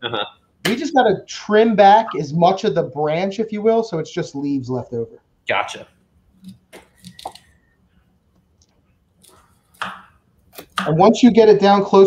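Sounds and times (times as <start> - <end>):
person speaking: 0.0 - 7.5, 9.2 - 12.0.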